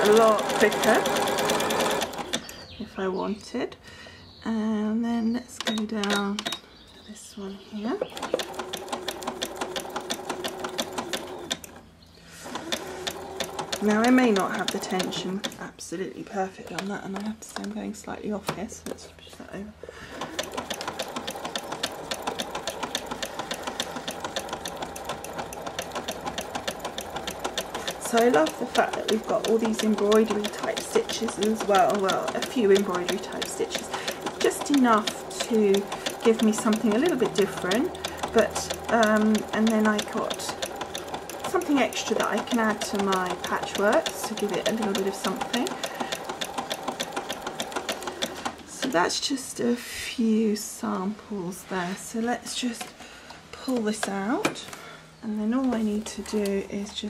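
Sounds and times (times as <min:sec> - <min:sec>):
sewing machine stitching: 0:00.0 - 0:02.8, 0:08.0 - 0:15.7, 0:20.1 - 0:49.1
fast even needle ticking: 0:20.2 - 0:49.0.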